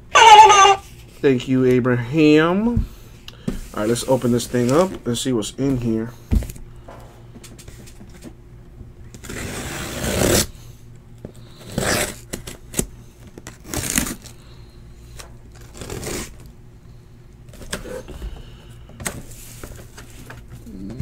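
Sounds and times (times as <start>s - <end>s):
cardboard scraping and rubbing: 3.6s - 5.0s, 9.1s - 10.5s, 11.6s - 12.6s, 15.6s - 16.4s.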